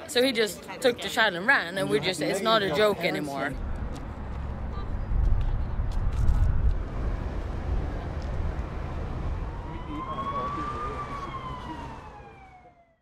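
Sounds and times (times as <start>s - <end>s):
low street rumble: 0.0s - 13.0s
emergency vehicle siren wailing: 7.0s - 13.0s.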